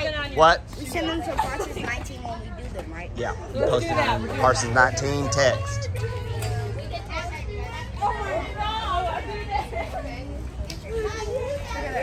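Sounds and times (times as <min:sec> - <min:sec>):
children talking and calling out: 0:00.0 - 0:12.0
steady low rumble: 0:02.2 - 0:12.0.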